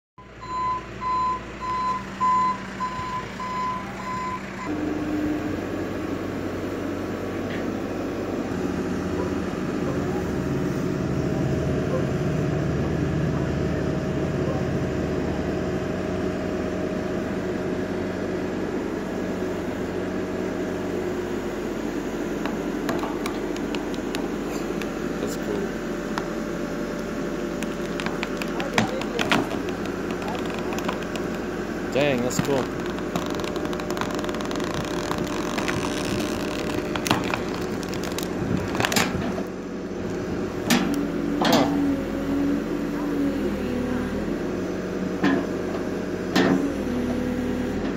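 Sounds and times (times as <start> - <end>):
reversing alarm beeping: 0.2 - 5.5
diesel engine running: 0.2 - 47.9.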